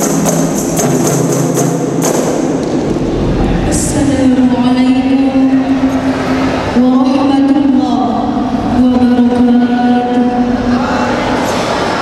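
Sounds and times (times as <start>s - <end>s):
frame drums struck: 0.0s - 3.8s.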